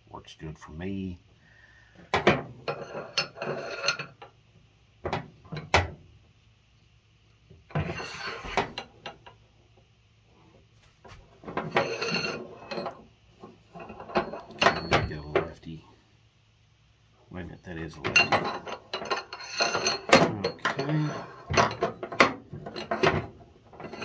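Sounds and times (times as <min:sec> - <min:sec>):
metal scraping rattles: 0:11.4 - 0:15.6, 0:17.6 - 0:24.0.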